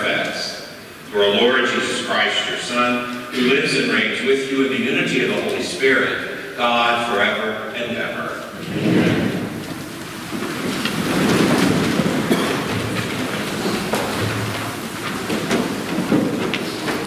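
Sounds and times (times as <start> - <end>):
crowd rustling and shuffling: 0.0 - 17.0
knocks and creaks: 8.5 - 17.0.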